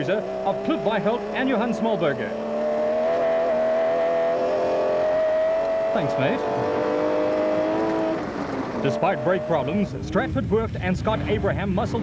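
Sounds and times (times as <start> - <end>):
engine at steady high revs: 0.0 - 12.0.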